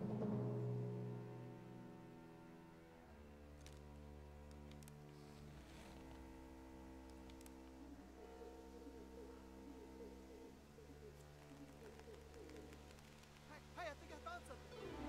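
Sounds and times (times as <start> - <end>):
low musical drone: 0.0 - 11.7, 14.4 - 15.0.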